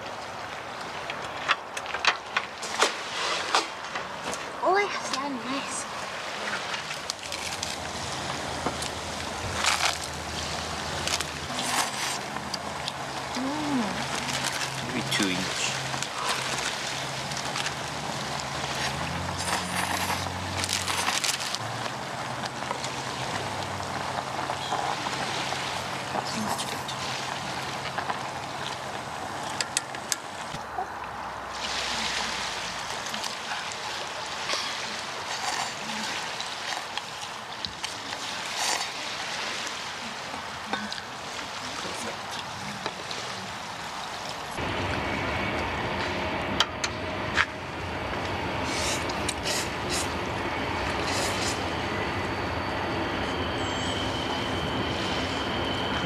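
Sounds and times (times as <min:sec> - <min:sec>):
train rumbling past: 0:44.6 - 0:56.0.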